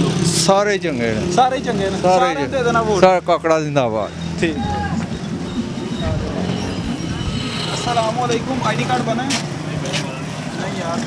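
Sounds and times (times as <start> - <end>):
traffic noise: 0.0 - 11.0
faint background voices: 1.3 - 11.0.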